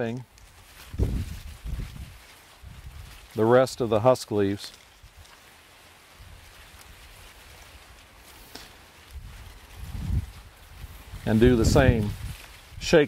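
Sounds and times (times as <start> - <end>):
corn husk rustling: 0.0 - 13.0
wind rumbling on microphone: 0.5 - 3.3, 9.1 - 13.0
husk snapping: 7.9 - 9.2.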